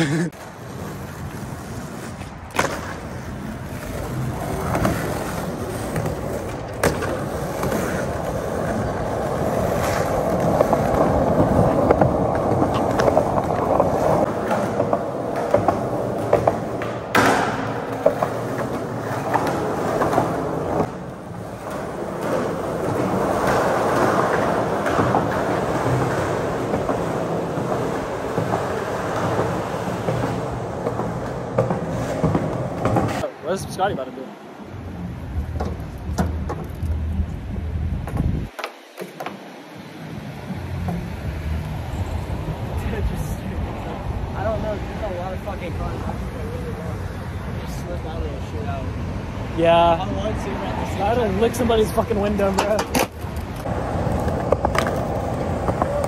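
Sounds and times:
skateboard clacks: 0.0s - 33.3s, 35.4s - 37.1s, 37.9s - 39.7s, 51.0s - 56.0s
skateboard wheels rolling on concrete: 0.0s - 56.0s.

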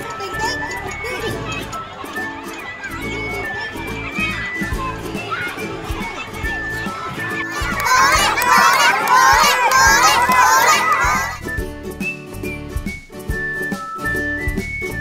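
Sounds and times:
children shouting and cheering: 0.0s - 11.5s
background music: 0.0s - 15.0s.

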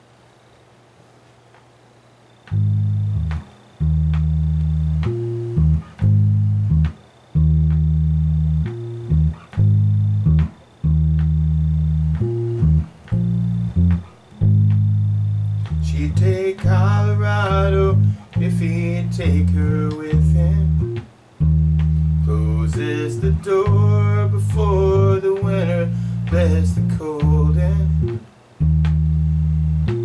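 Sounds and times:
electric bass guitar playing: 2.5s - 30.0s.

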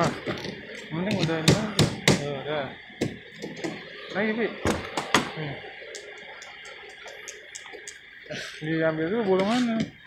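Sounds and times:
faint clicks: 5.9s - 8.1s.

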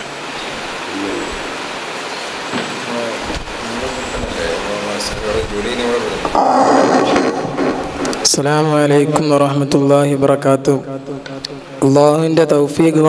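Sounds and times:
room and microphone hiss: 0.0s - 13.0s
faint voices murmuring: 0.9s - 1.6s.

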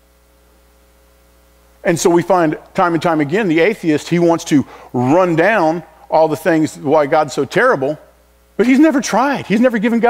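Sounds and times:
low electrical hum: 0.0s - 10.0s
man talking: 1.8s - 10.0s.

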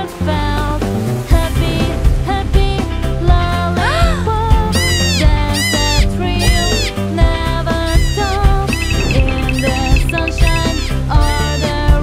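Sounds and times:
children's song music: 0.0s - 12.0s
cat meowing: 4.8s - 6.9s, 7.9s - 11.7s.

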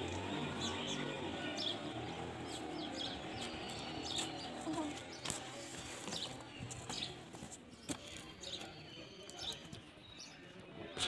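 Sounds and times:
small birds chirping: 0.0s - 11.0s.

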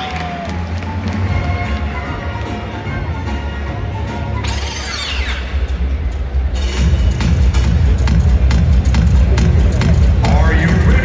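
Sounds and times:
music beat: 6.6s - 11.0s.

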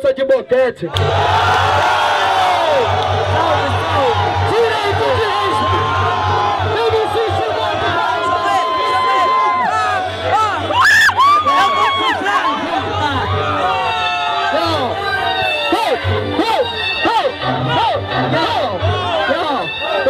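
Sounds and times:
crowd cheering and shouting: 0.8s - 20.0s
high yells: 0.9s - 15.8s
hip-hop beat: 0.9s - 20.0s.

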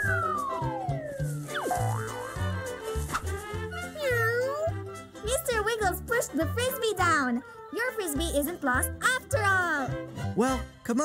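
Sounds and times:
background music with beat: 0.0s - 5.1s
cartoon cat meowing: 3.9s - 4.7s.

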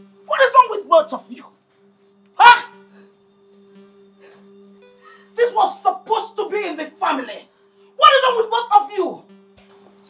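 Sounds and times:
background music drone: 0.0s - 10.0s
person shouting exclamation: 0.3s - 1.3s, 2.4s - 2.9s, 5.4s - 7.4s, 8.0s - 9.2s.

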